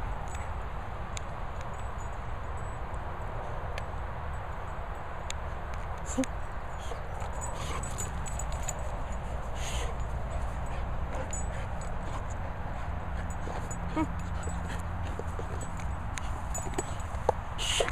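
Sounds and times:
dog sniffing: 6.8 - 17.9.

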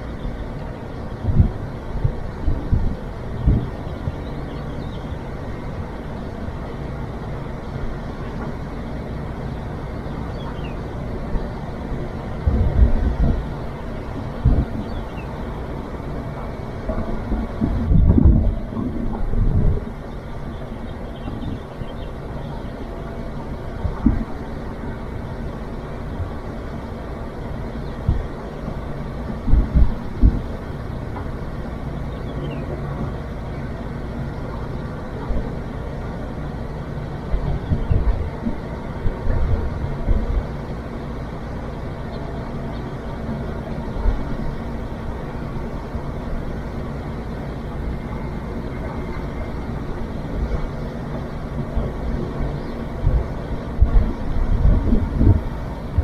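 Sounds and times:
low mechanical hum: 0.0 - 56.0.

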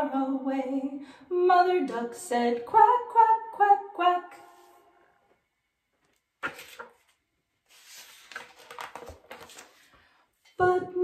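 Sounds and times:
book pages rustling and turning: 6.0 - 10.2.

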